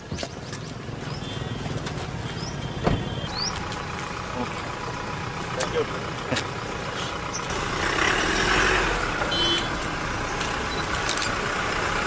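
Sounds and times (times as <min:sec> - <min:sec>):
vehicle engines idling: 0:00.0 - 0:12.0.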